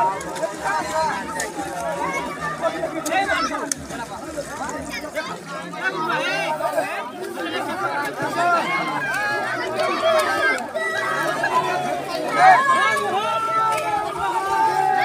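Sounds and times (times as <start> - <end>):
babble of voices: 0.0 - 15.0.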